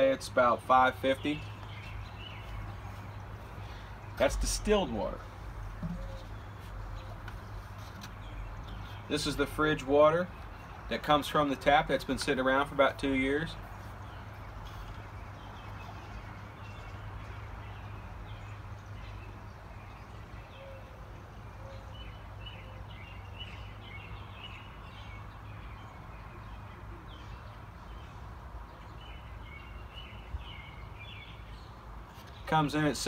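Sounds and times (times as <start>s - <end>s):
birds chirping: 0.0s - 33.0s.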